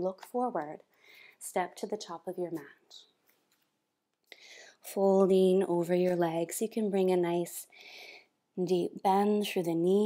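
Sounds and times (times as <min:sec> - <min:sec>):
woman speaking: 0:00.0 - 0:03.1, 0:04.8 - 0:07.7, 0:08.6 - 0:10.0
soft breath in: 0:00.9 - 0:01.4, 0:07.7 - 0:08.4.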